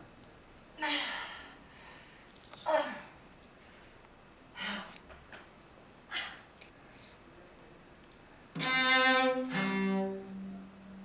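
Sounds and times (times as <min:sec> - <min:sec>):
cello bowed long notes: 0:08.5 - 0:11.0.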